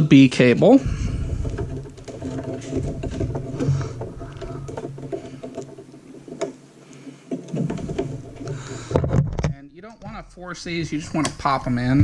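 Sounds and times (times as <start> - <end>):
cables clicking and rattling: 0.0 - 10.2.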